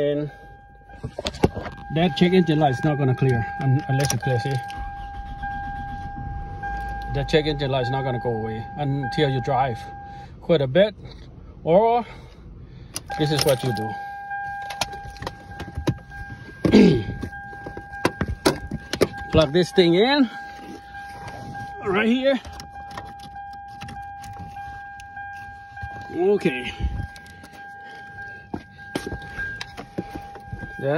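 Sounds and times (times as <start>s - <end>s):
high-pitched tone: 0.0s - 10.0s, 24.4s - 30.9s
dashboard warning chime: 0.0s - 10.9s, 13.0s - 30.9s
low rumble: 0.4s - 9.1s.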